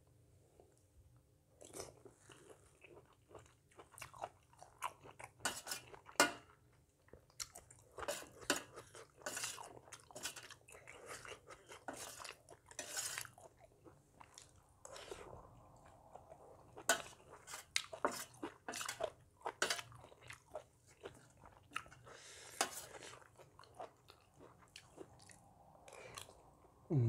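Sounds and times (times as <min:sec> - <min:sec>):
wet chewing and lip smacks: 0:22.9 - 0:26.4.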